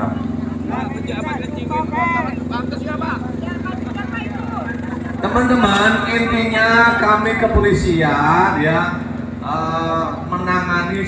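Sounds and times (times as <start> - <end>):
crowd talking: 0.0 - 11.0
steady low hum: 0.0 - 11.0.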